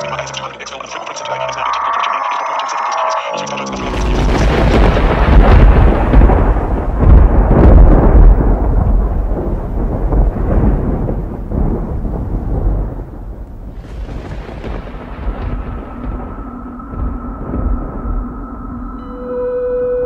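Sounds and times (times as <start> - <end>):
thunder rolling: 1.6 - 19.3.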